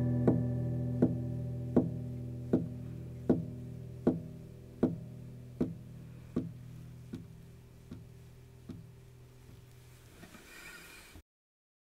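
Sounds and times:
acoustic guitar chord ringing: 0:00.0 - 0:06.3
light guitar pick strokes: 0:00.0 - 0:11.2.

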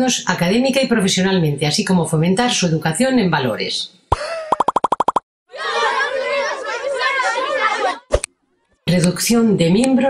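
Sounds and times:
falling electronic tone: 0:04.6 - 0:05.2.

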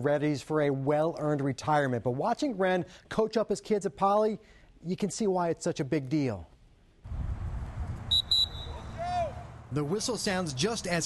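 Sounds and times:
shrill pea whistle blasts: 0:08.1 - 0:09.2.

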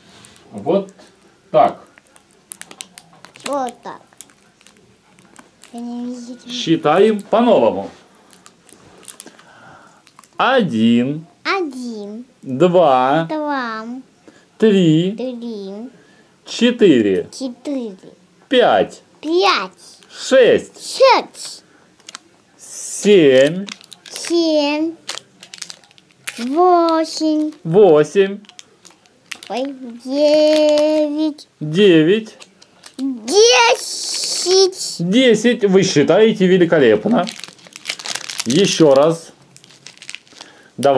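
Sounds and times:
plastic packet crinkling: 0:01.8 - 0:07.3, 0:08.2 - 0:10.4, 0:22.0 - 0:22.2, 0:23.4 - 0:27.7, 0:28.4 - 0:31.2, 0:32.4 - 0:34.4, 0:36.9 - 0:40.9
child's voice: 0:03.4 - 0:04.1, 0:05.7 - 0:06.6, 0:11.5 - 0:12.3, 0:13.3 - 0:14.1, 0:15.2 - 0:16.0, 0:17.3 - 0:18.2, 0:19.2 - 0:20.0, 0:20.9 - 0:21.5, 0:24.1 - 0:25.0, 0:26.4 - 0:27.6, 0:29.5 - 0:31.5, 0:33.0 - 0:35.0.

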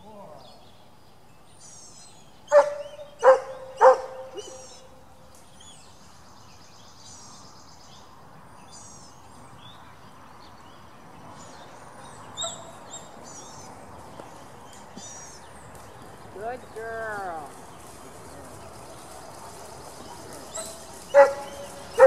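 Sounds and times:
birds singing faintly: 0:00.0 - 0:22.0
dog barking: 0:02.5 - 0:04.7, 0:20.5 - 0:22.0.

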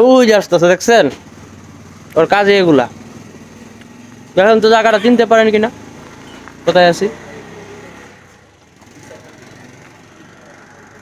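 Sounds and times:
low steady street hum: 0:00.0 - 0:11.0.

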